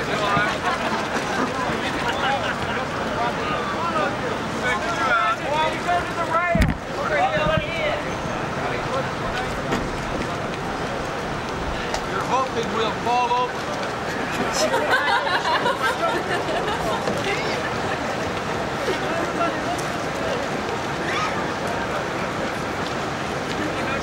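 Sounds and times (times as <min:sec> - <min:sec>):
men talking indistinctly: 0:00.0 - 0:17.9
water: 0:00.0 - 0:24.0
wind: 0:00.0 - 0:24.0.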